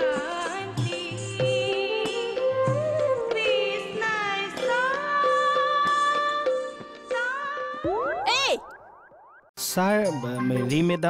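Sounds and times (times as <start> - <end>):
cartoon boing sound effect: 7.9 - 9.4.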